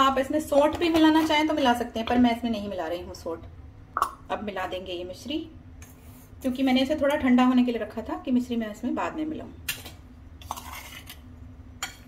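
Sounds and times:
spoon scraping dry mix: 10.4 - 11.3.

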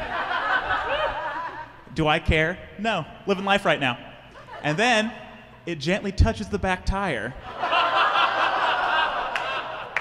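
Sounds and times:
audience laughing: 0.0 - 1.9, 7.4 - 10.0.

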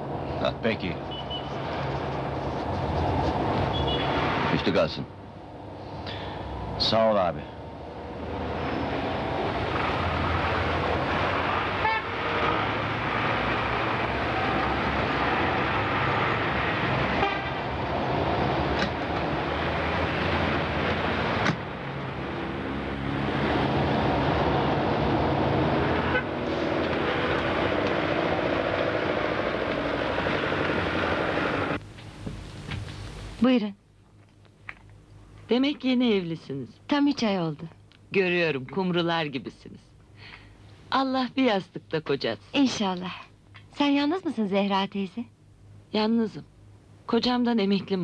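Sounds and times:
car engines running: 0.0 - 31.8
car horns tooting: 1.0 - 1.6, 3.6 - 4.5, 11.5 - 12.9, 14.1 - 17.9, 25.8 - 27.2.

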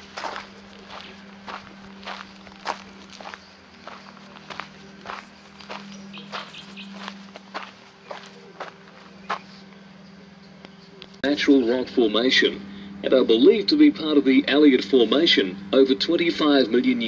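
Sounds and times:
footsteps on dry leaves: 0.0 - 9.7.

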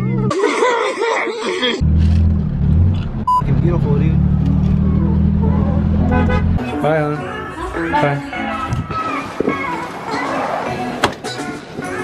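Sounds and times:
car engine drone in cabin: 1.8 - 6.6
high beep: 3.3 - 3.5.

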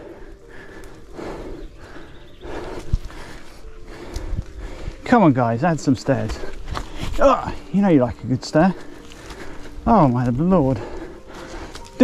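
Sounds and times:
heavy laboured breathing: 0.0 - 12.0.

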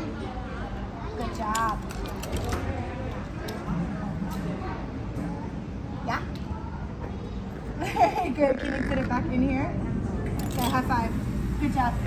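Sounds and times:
murmur of children's voices: 0.0 - 12.0.

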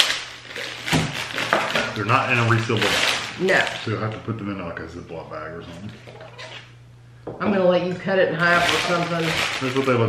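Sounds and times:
plastic wrapper crinkling and tearing: 0.0 - 4.4, 8.4 - 10.0.

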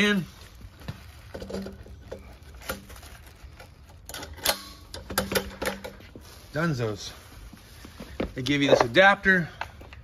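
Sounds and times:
metal tubes clicking and knocking: 3.9 - 6.0.

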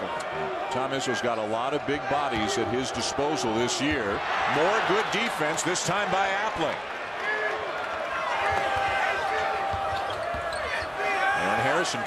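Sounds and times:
crowd noise: 0.0 - 12.0
shoes squeaking: 9.8 - 11.0.

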